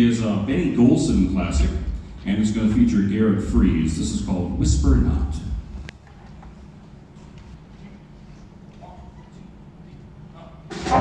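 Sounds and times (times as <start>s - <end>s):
jazz big band playing: 10.7s - 11.0s.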